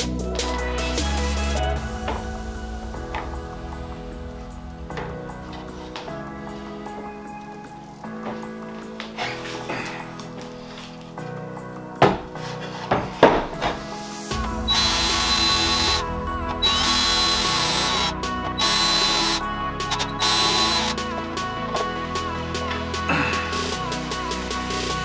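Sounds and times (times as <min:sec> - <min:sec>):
background music: 0:00.0 - 0:25.0
wooden boards knocking: 0:12.0 - 0:12.3, 0:12.9 - 0:13.8
cordless drill whine: 0:14.7 - 0:21.0.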